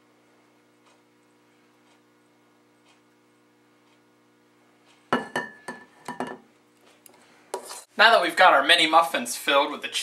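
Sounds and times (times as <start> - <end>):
faint room hum: 0.0 - 10.0
spoon clinking on metal bowl: 5.2 - 6.4.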